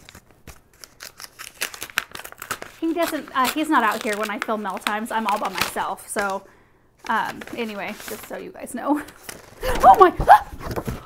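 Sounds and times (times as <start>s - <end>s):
paper envelope crinkling: 0.0s - 6.4s, 7.0s - 11.0s.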